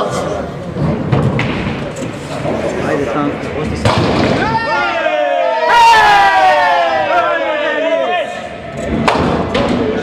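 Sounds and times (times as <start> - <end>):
low rumble of bowling balls: 0.0 - 4.5.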